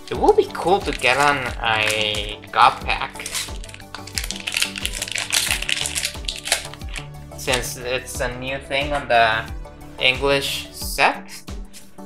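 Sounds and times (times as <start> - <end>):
background music with steady beat: 0.0 - 12.0
wrapper crinkling and tearing: 0.5 - 7.7.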